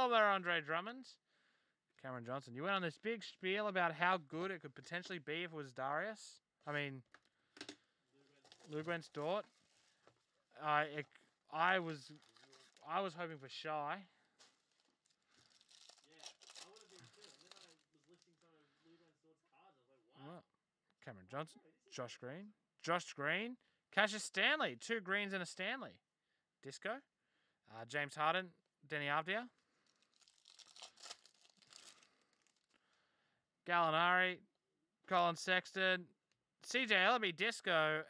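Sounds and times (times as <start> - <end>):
wrapper crinkling and tearing: 8.2 - 10.4, 11.7 - 13.0, 14.3 - 18.5, 29.6 - 32.7.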